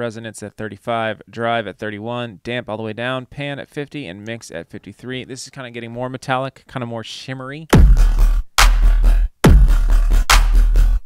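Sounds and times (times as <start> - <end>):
heavy dubstep bass hits: 7.8 - 11.0.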